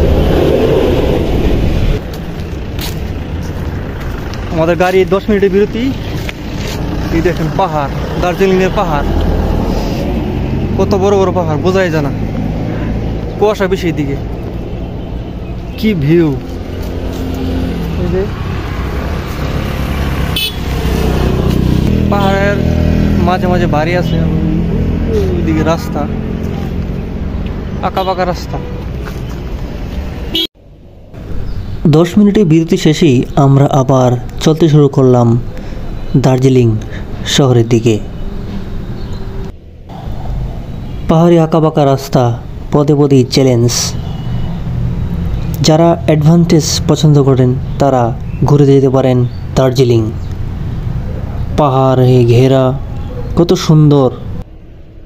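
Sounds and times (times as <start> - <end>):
low rumble: 0.0 - 5.6
vehicle engine rumbling: 0.0 - 55.0
man talking: 4.5 - 6.2, 7.0 - 9.2, 10.8 - 12.2, 13.3 - 14.3, 15.8 - 16.5, 17.9 - 18.4, 22.0 - 26.2, 27.8 - 28.8, 31.8 - 35.5, 36.1 - 38.1, 41.1 - 44.0, 45.6 - 50.2, 51.5 - 54.3
horn toot: 20.2 - 21.4, 30.3 - 30.5.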